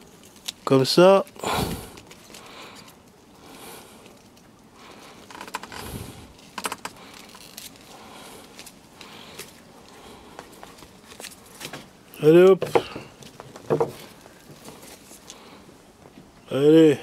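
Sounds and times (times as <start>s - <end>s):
stalks and leaves rustling: 0.0s - 16.9s.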